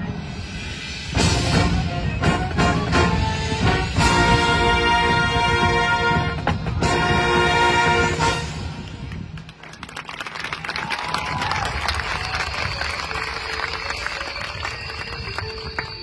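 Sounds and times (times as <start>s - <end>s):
brass chord: 1.2s - 8.8s.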